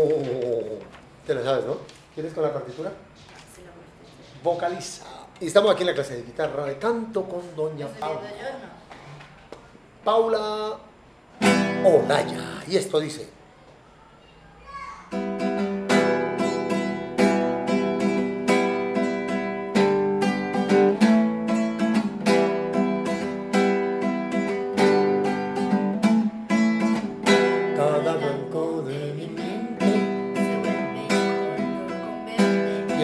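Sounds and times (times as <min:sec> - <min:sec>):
acoustic guitar strumming chords: 0:11.4 - 0:12.7, 0:15.1 - 0:33.0.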